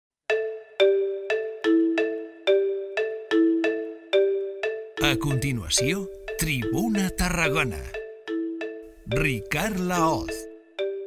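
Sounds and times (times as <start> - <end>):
jingle of bell-like notes: 0.3 - 11.0.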